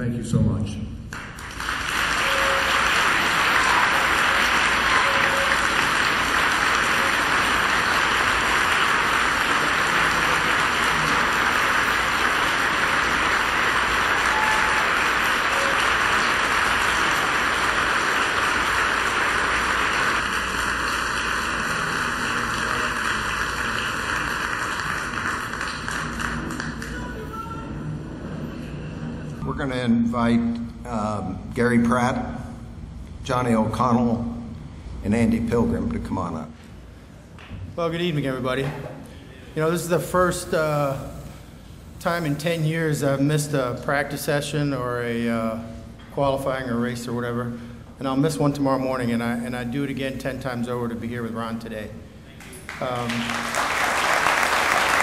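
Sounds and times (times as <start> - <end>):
audience applauding: 1.1 - 27.6, 52.4 - 55.0.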